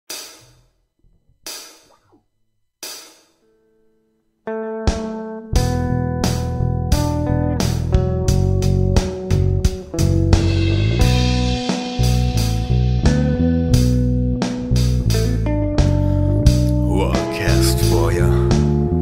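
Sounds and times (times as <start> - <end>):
blues-rock band playing: 4.9 - 19.0
guitar chord ringing: 16.0 - 19.0.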